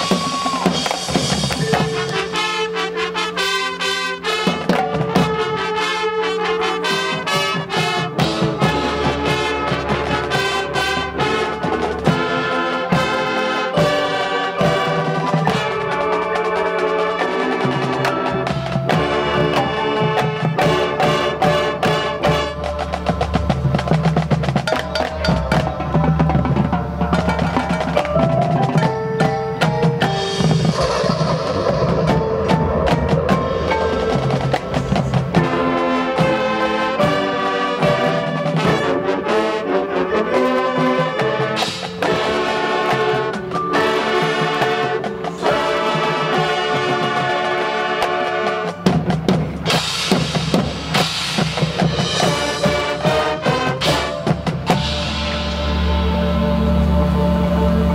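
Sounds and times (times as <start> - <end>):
snare drum rolls: 0.0 - 2.8, 17.6 - 39.0, 46.2 - 56.0
marching band playing: 0.0 - 57.9.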